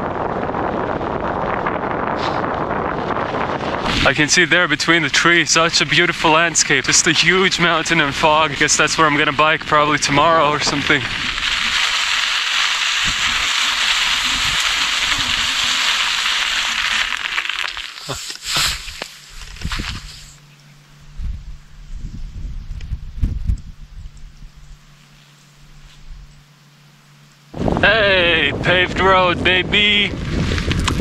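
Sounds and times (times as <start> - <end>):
bicycle tyres rushing on snow: 0.0 - 20.4, 27.5 - 31.0
wind: 0.0 - 31.0
scattered crunches and clicks: 3.8 - 20.4, 28.7 - 31.0.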